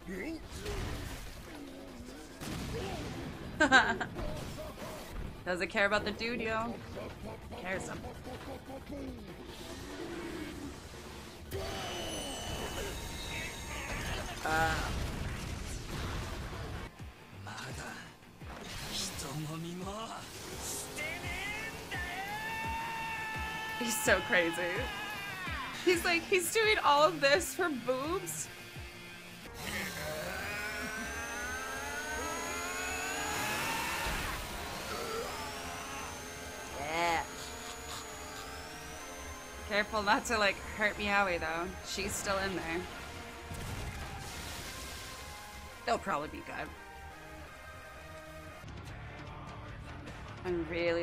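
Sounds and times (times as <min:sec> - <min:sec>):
action soundtrack music: 0:00.0 - 0:51.0
engine-like revving effects: 0:04.4 - 0:16.9, 0:18.4 - 0:48.6
long rising whines: 0:20.8 - 0:44.2
person shouting: 0:21.1 - 0:26.2.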